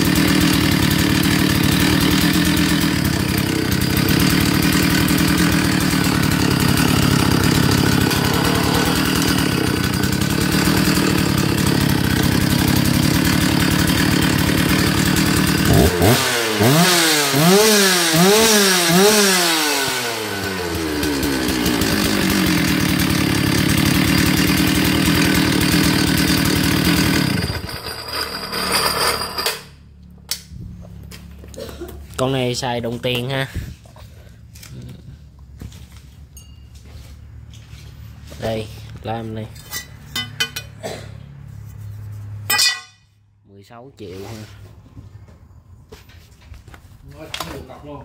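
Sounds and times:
chainsaw engine revving: 0.0s - 29.8s
ringing metallic clink: 36.4s - 36.8s, 42.5s - 43.1s.

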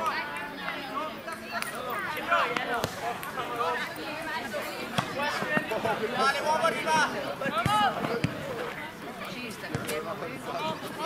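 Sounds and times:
people chatting: 0.0s - 11.0s.

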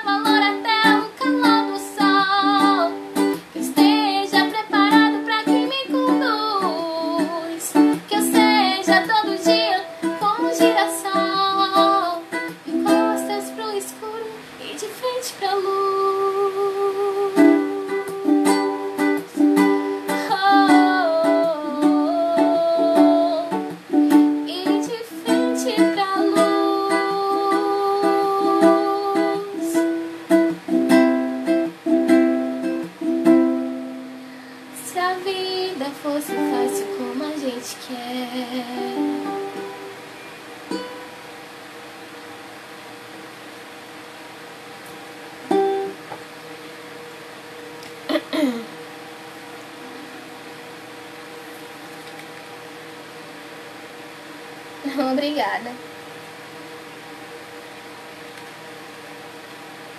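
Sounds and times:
woman singing: 0.0s - 30.0s, 34.7s - 39.9s
ukulele strumming: 0.0s - 41.3s, 44.8s - 46.3s.

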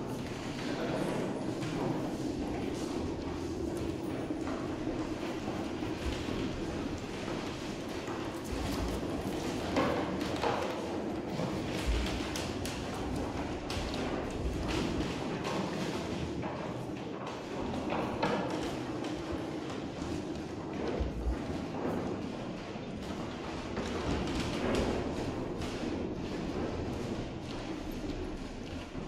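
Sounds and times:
footsteps: 0.0s - 29.0s
partitions rolling across floor: 0.0s - 29.0s.

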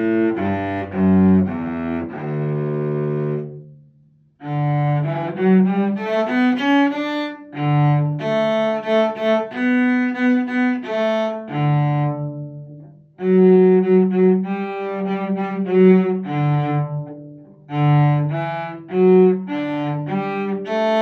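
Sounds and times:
bowed cello: 0.0s - 21.0s.

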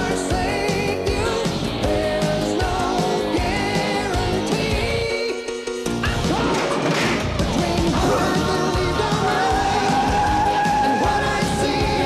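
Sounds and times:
trailer music: 0.0s - 12.0s
crash sound effect: 6.0s - 8.6s.

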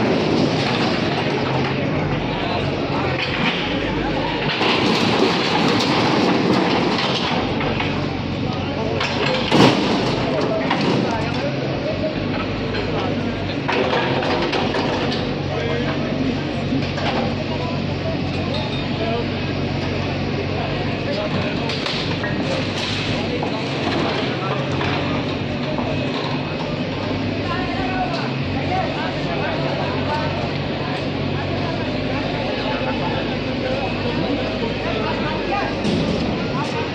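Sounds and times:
backhoe engine running: 0.0s - 36.9s
people talking: 0.0s - 36.9s
clatter of metal and debris: 3.1s - 8.1s, 8.9s - 11.4s.

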